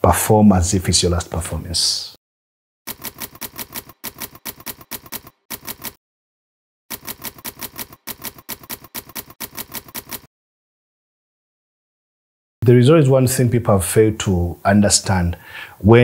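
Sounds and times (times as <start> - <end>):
typewriter keys striking: 2.9 - 6.0, 6.9 - 10.3.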